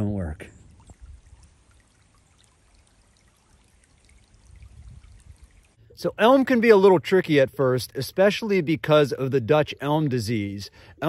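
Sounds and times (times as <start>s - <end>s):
stream water trickling: 0.5s - 11.0s.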